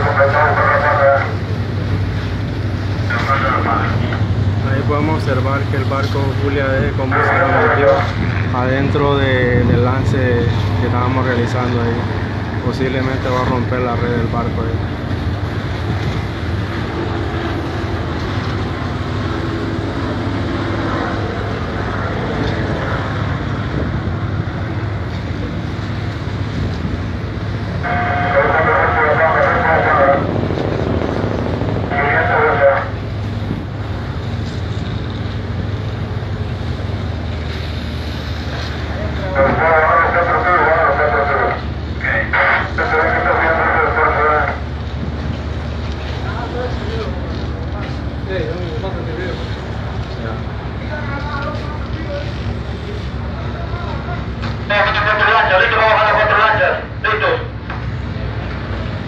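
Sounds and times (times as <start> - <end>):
voices: 0.0 - 23.8, 24.5 - 59.0
low engine drone: 0.0 - 59.0
sea noise: 0.0 - 59.0
wind: 0.0 - 59.0.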